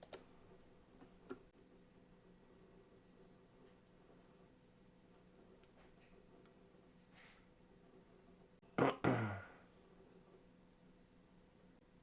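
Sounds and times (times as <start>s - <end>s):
person throat sound: 8.7s - 9.7s.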